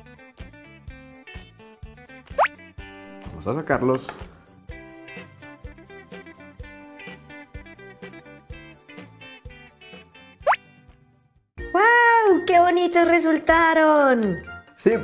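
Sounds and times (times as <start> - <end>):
light children's background music: 0.0 - 11.0, 11.6 - 15.0.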